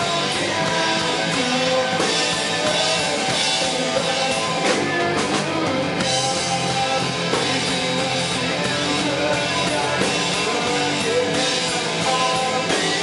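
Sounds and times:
drum kit: 0:00.0 - 0:13.0
electric guitars: 0:00.0 - 0:13.0.

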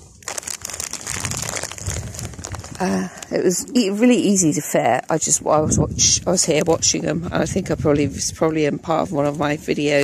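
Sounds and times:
dense crackling rustle: 0:00.0 - 0:04.0, 0:06.1 - 0:10.0
low rumble: 0:00.6 - 0:03.3.

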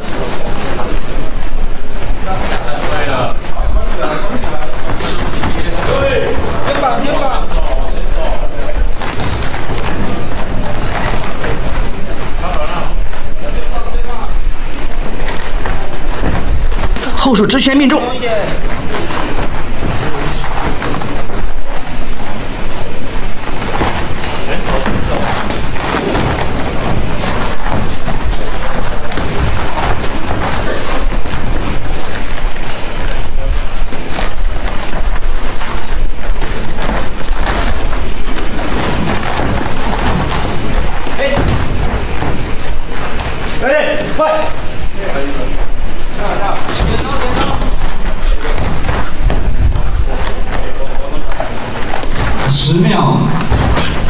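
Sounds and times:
person calling out: 0:17.2 - 0:18.1.

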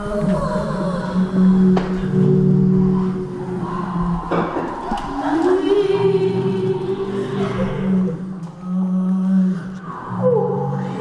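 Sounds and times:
voices singing low chant: 0:00.0 - 0:11.0.

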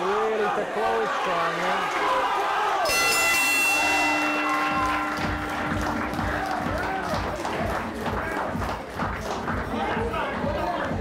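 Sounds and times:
crowd voices and cheering: 0:00.0 - 0:11.0
boxing ring bell ringing: 0:02.9 - 0:08.2.

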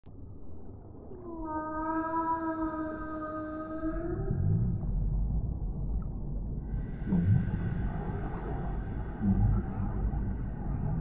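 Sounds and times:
low rumbling underwater noise: 0:00.2 - 0:11.0
whale moaning call: 0:01.2 - 0:04.9.

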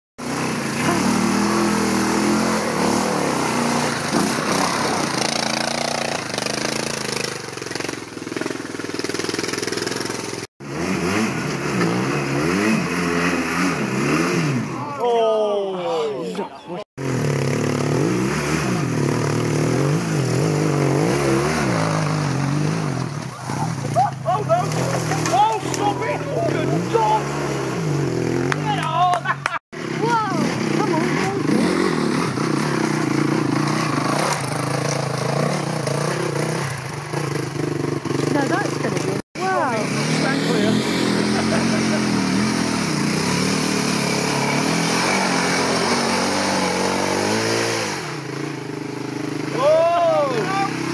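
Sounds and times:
motorcycle engine revving: 0:00.2 - 0:15.1, 0:16.9 - 0:50.9.

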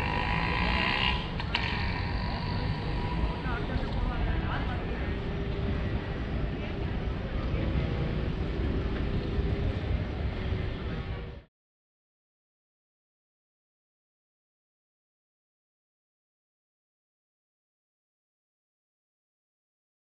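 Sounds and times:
people's voices: 0:00.0 - 0:11.5
road traffic rumble: 0:00.0 - 0:11.5.

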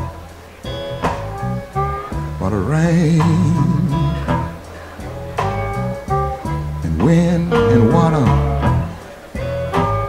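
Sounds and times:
slow blues guitar: 0:00.0 - 0:10.0.

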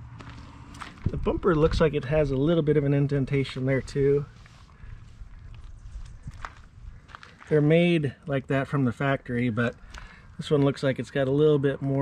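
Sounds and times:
low rumble: 0:00.0 - 0:04.1
footsteps on gravel: 0:00.1 - 0:02.6, 0:03.6 - 0:08.0, 0:09.4 - 0:12.0.

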